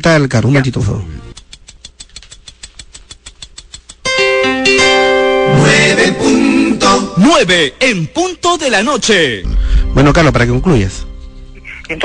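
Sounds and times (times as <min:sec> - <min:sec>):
rapid clock ticking: 0:01.3 - 0:04.3.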